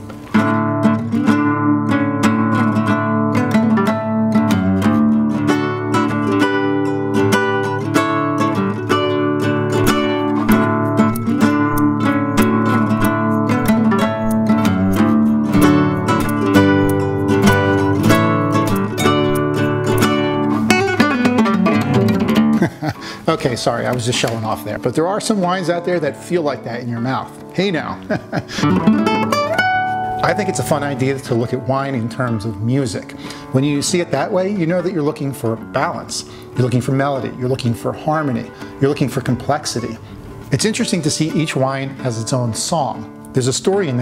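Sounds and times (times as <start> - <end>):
fingerstyle classical guitar: 0.0 - 44.0.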